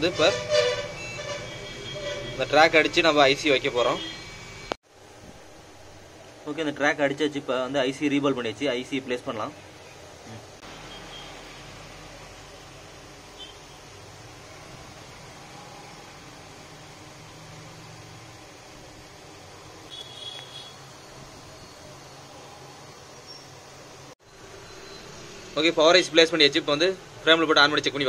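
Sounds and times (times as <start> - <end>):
fan-like machine hum and hiss: 1.7 - 28.0.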